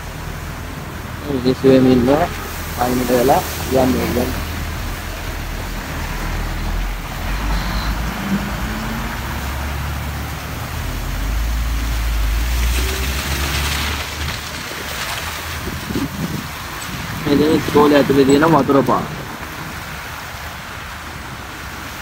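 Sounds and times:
bus engine rumble: 0:00.0 - 0:22.0
tyres hissing through water: 0:00.0 - 0:22.0.

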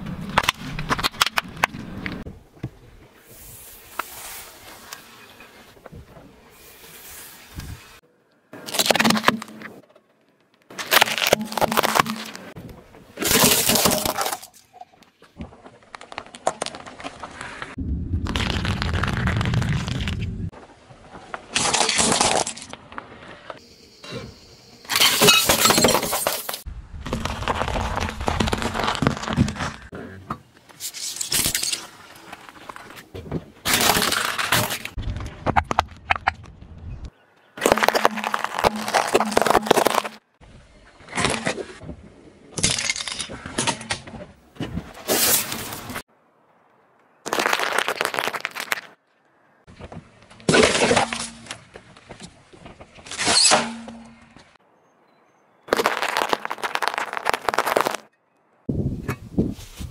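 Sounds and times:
plate cracking and shattering: 0:10.8 - 0:12.6, 0:13.2 - 0:14.7, 0:21.5 - 0:22.8, 0:33.6 - 0:36.3, 0:37.6 - 0:40.2, 0:42.6 - 0:44.0, 0:47.2 - 0:49.0, 0:55.7 - 0:58.1
cardboard box crunching: 0:27.2 - 0:29.8, 0:55.7 - 0:58.1
plastic lighters crunching: 0:55.7 - 0:58.1
tomatoes bursting under tyre: 0:55.7 - 0:58.1.

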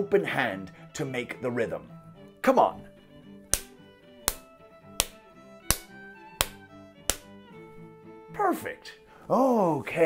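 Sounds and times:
music with held notes: 0:00.0 - 0:10.0
fist pounding into palm: 0:03.5 - 0:07.3.

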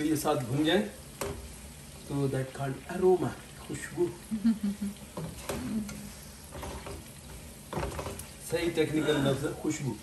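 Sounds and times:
spatula scraping a pan: 0:00.0 - 0:02.4, 0:05.0 - 0:09.8
onions sizzling in oil: 0:00.0 - 0:10.0.

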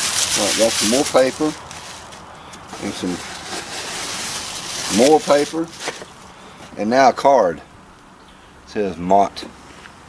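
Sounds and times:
paper rustling: 0:00.0 - 0:06.3.

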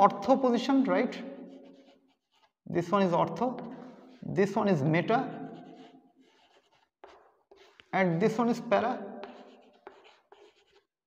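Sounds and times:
chalk scratching on chalkboard: 0:01.1 - 0:08.6, 0:09.2 - 0:11.0.

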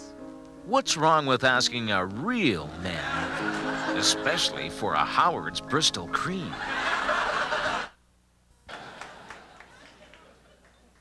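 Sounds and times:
audience laughter: 0:02.9 - 0:04.5, 0:06.5 - 0:08.0, 0:08.7 - 0:11.0.

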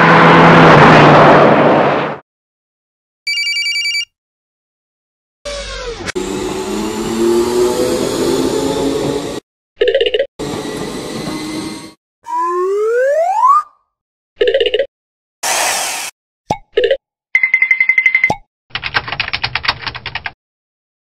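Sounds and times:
motor-like whir: 0:05.5 - 0:09.4
burst of hiss: 0:15.4 - 0:16.1.

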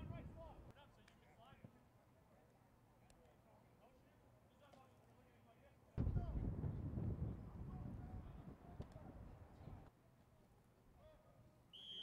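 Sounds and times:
sports whistle blast: 0:11.7 - 0:12.0.

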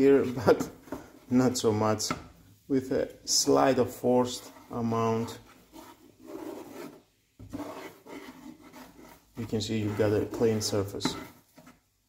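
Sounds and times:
spatula scraping a frying pan: 0:00.0 - 0:01.8, 0:02.6 - 0:12.0.

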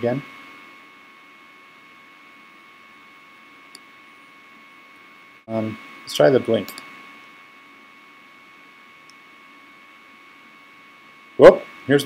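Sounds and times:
electrical hum and hiss: 0:00.0 - 0:12.0.

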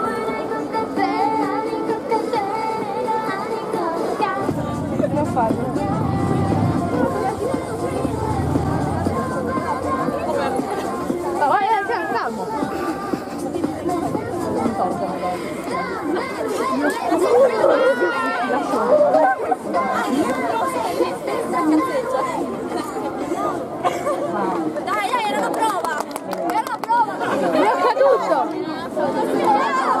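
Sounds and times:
people chattering: 0:00.0 - 0:30.0.

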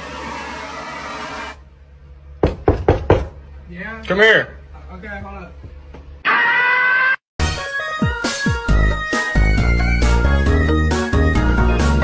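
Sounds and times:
butane torch hissing: 0:00.0 - 0:01.6
knocks on door: 0:02.4 - 0:03.4.

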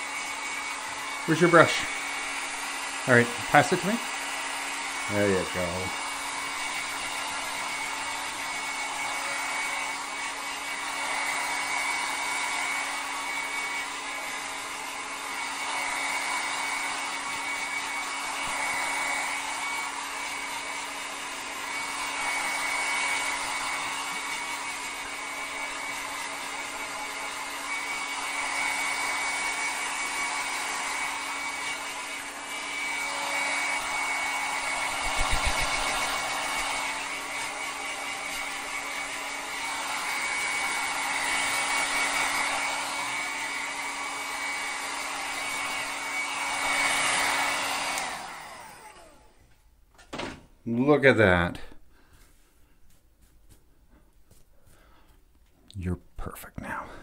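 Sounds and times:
hair dryer blowing: 0:00.0 - 0:49.6.

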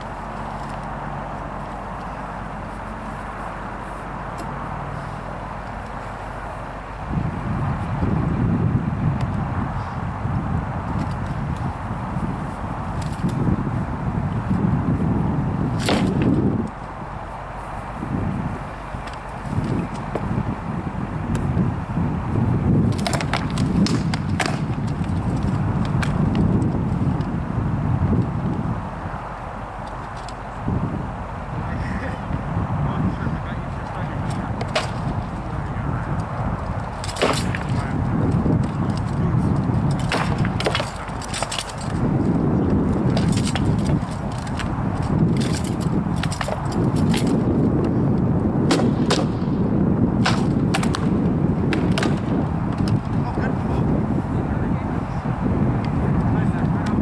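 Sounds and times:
wind rumble on microphone: 0:00.0 - 0:57.0
swords cracking on shields: 0:15.8 - 0:16.3, 0:34.6 - 0:35.1, 0:37.0 - 0:37.8, 0:39.9 - 0:41.8
rattan swords clacking on shields: 0:15.8 - 0:16.4, 0:22.9 - 0:26.2, 0:34.3 - 0:35.2, 0:36.9 - 0:37.8, 0:39.8 - 0:42.0, 0:43.1 - 0:47.4, 0:50.2 - 0:51.1, 0:51.7 - 0:53.0.

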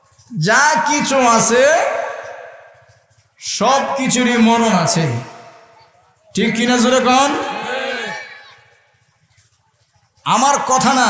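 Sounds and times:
man speaking through pa: 0:06.4 - 0:08.1.

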